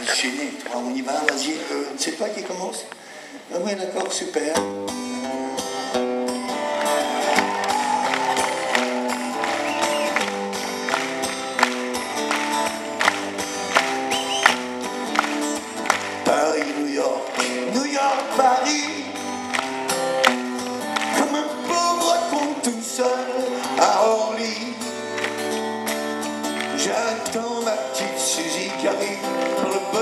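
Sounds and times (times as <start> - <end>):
live band playing: 4.6 - 30.0.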